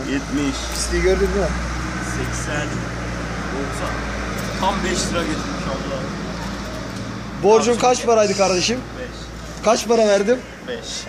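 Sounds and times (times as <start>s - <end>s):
man speaking: 3.5s - 6.2s, 7.4s - 11.0s
coins clinking: 4.2s - 5.4s.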